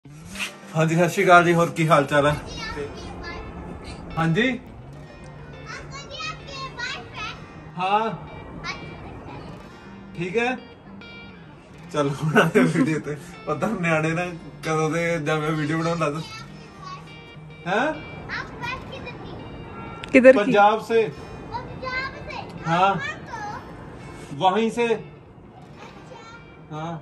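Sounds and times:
faint background music: 0.0s - 27.0s
high child-like voices calling: 5.6s - 7.6s, 8.6s - 9.7s.

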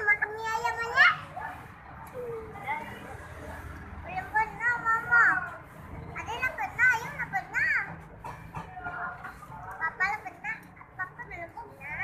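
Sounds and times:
young child talking: 0.0s - 1.4s.

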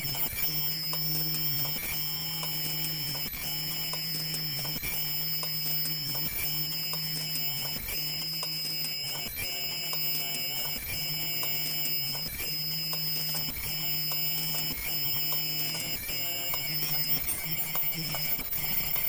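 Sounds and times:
machine hum and whine: 0.0s - 19.0s
light mechanical clicks: 0.1s - 19.0s.

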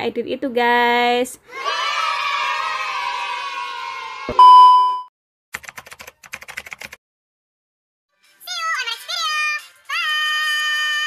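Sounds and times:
cheering yay effect: 1.5s - 4.4s, 9.3s - 11.0s
loud beep: 4.4s - 5.1s.

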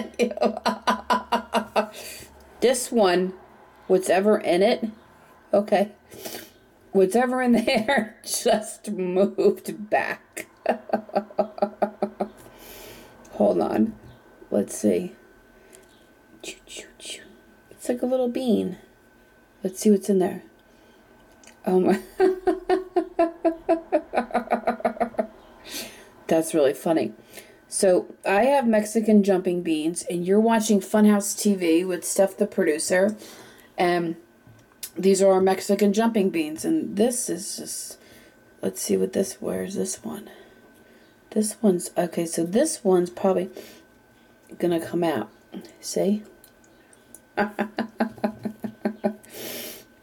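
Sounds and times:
woman laughing: 0.0s - 2.2s, 10.3s - 12.4s, 21.8s - 25.4s, 47.4s - 49.3s
sharp intake of breath: 12.5s - 13.2s, 49.3s - 50.0s.

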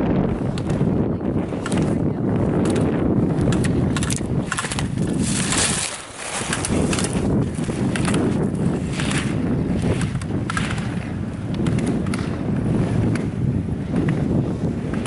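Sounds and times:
wind on microphone: 0.0s - 15.0s
skis carving on hard snow: 4.5s - 10.9s.

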